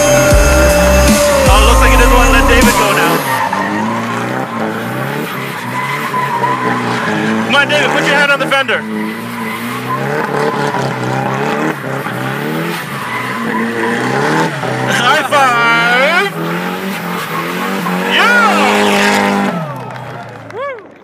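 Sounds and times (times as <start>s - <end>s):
car engine revving: 0.0s - 21.0s
tyres skidding and squealing: 0.0s - 21.0s.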